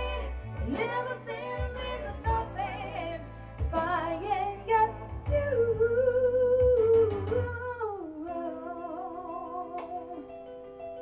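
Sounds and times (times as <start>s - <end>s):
backing track of held chords: 0.0s - 11.0s.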